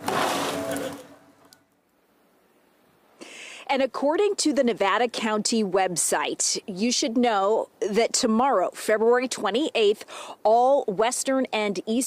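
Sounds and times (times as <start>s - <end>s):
snow shovel scraping pavement: 0.0s - 1.0s.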